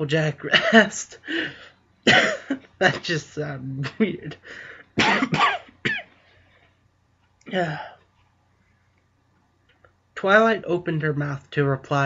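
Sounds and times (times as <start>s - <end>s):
person coughing: 2.1s - 3.2s, 5.0s - 6.2s.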